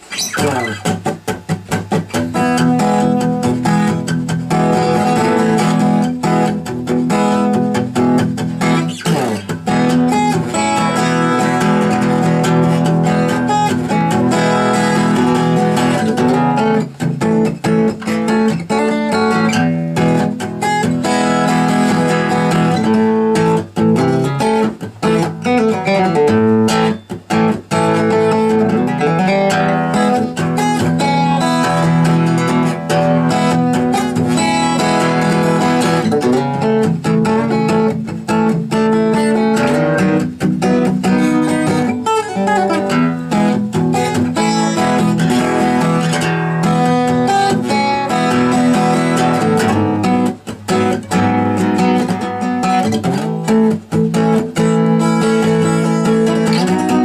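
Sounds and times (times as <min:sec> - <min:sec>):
acoustic guitar strummed chords: 0:00.0 - 0:57.0.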